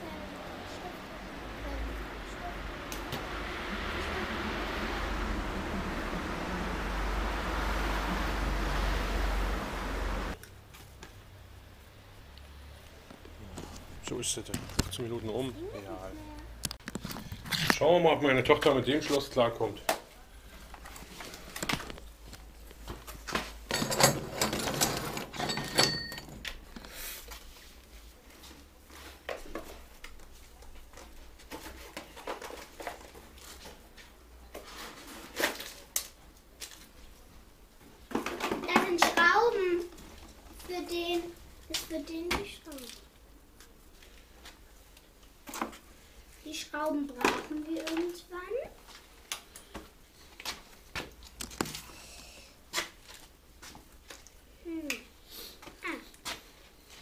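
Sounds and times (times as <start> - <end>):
child's voice: 0.0 - 2.8, 15.6 - 16.6, 38.5 - 39.9, 40.6 - 43.0, 46.4 - 48.8, 54.6 - 55.1, 55.8 - 56.2.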